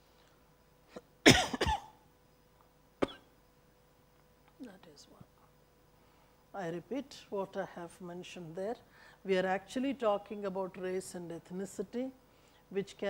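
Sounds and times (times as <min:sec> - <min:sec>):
woman coughing: 0:00.9 - 0:02.0, 0:03.0 - 0:03.3.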